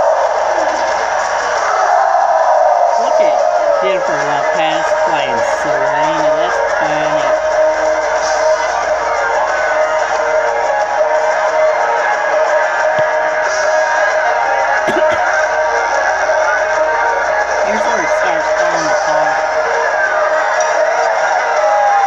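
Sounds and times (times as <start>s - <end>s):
concert crowd cheering: 0.0s - 22.0s.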